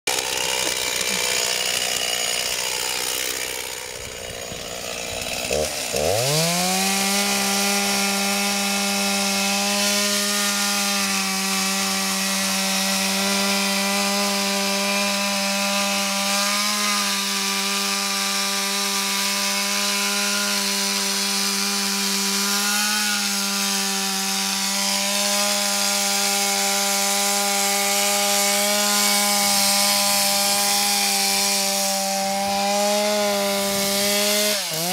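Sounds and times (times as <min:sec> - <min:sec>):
chainsaw cutting through ice: 0:00.0 - 0:34.9.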